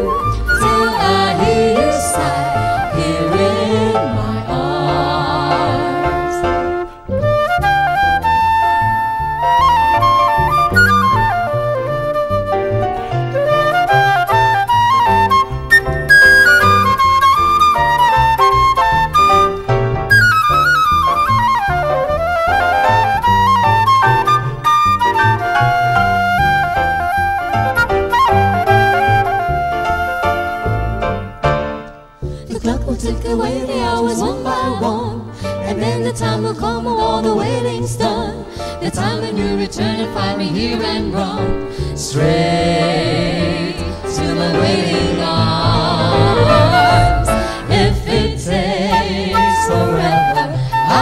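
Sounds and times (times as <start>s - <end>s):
flute solo: 0.0s - 3.8s, 5.9s - 31.5s, 48.8s - 51.0s
band accompaniment with bass: 0.0s - 35.6s, 40.2s - 51.0s.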